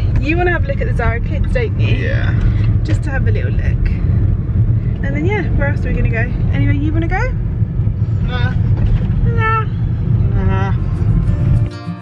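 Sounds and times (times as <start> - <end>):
car road and engine rumble: 0.0 - 12.0.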